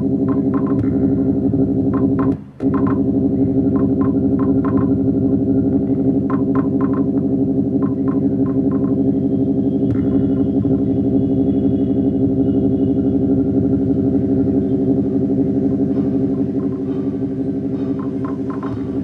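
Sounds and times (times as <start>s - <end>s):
dense low pulsing drone: 0.0s - 19.0s.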